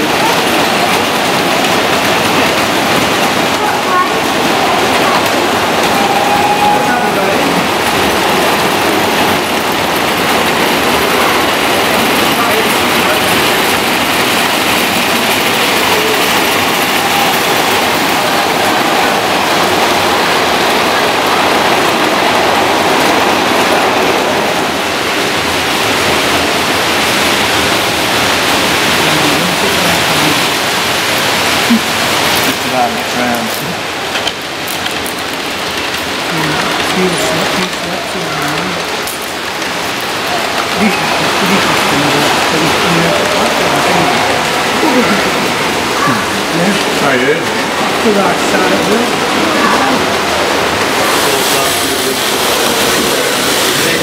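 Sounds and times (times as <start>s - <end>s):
model trains clattering on track: 0.0s - 6.4s, 7.1s - 23.6s, 25.3s - 54.0s
murmur of people talking: 0.0s - 54.0s.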